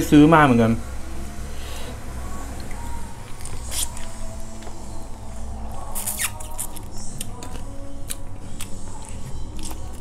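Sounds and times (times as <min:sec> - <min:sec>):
low steady hum: 0:00.0 - 0:10.0
person chewing and sucking fingers: 0:02.6 - 0:04.8, 0:05.8 - 0:10.0.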